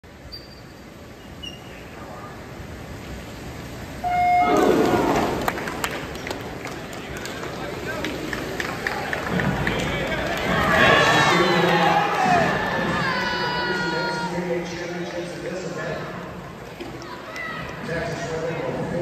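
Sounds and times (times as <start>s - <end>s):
swimmers splashing: 4.0s - 18.9s
crowd cheering and shouting: 4.4s - 5.9s, 8.8s - 14.6s.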